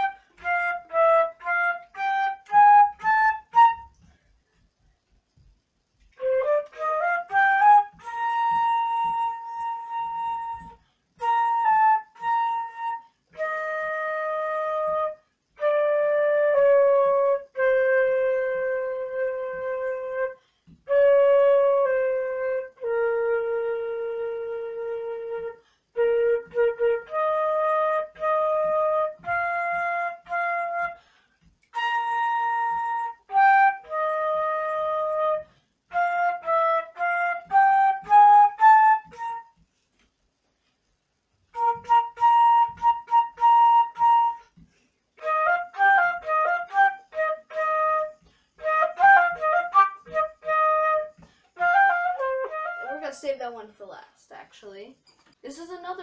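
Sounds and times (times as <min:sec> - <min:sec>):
solo flute melody: 0:00.0 - 0:05.0, 0:06.0 - 0:40.1, 0:41.4 - 0:53.3.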